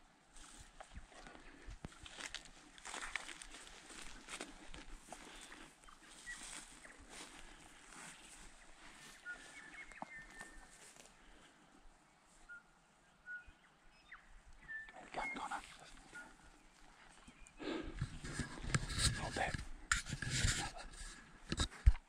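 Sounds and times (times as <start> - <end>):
rustling through long grass: 0.3 - 11.7, 15.3 - 22.0.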